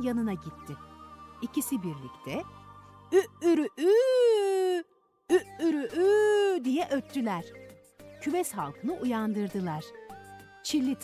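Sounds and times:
person imitating rooster crowing: 0:03.8 - 0:06.5.

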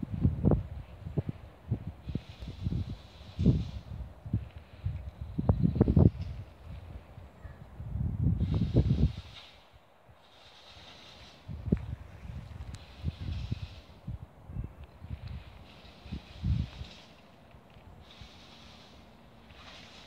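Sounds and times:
wind buffeting microphone: 0:00.0 - 0:20.0
leaves rustling: 0:08.4 - 0:20.0.

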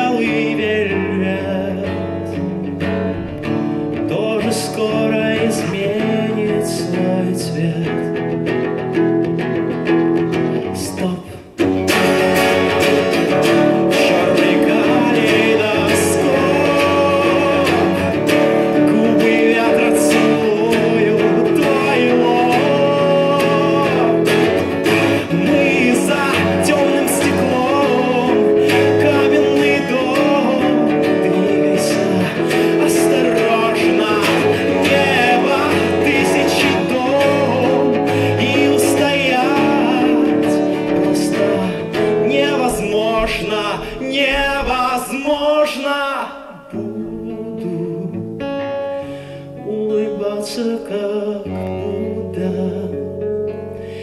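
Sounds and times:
acoustic guitar playing: 0:00.0 - 0:54.0
man singing: 0:00.0 - 0:54.0.

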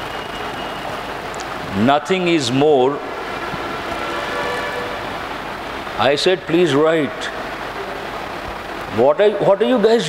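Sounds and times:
faint humming tones: 0:00.0 - 0:10.0
steady background hiss: 0:00.0 - 0:10.0.

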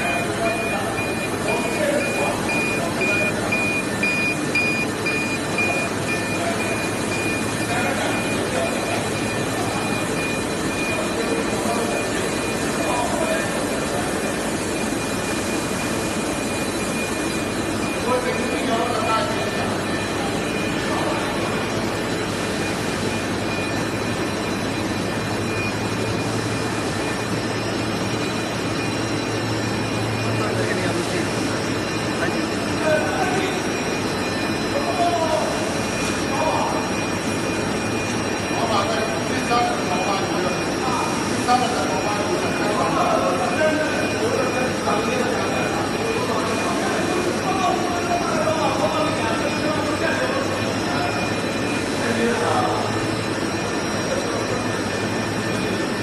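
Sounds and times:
faint steady whines: 0:00.0 - 0:56.0
low machine hum: 0:00.0 - 0:56.0
rollers and motors running: 0:00.0 - 0:56.0.

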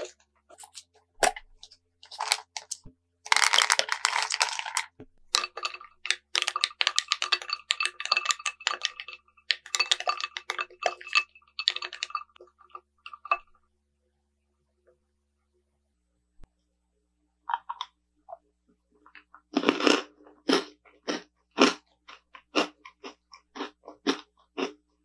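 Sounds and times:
candy rattling in bowl: 0:01.6 - 0:13.5
spoon clinking in glass bowl: 0:05.3 - 0:13.6
glass ringing: 0:07.2 - 0:12.4.

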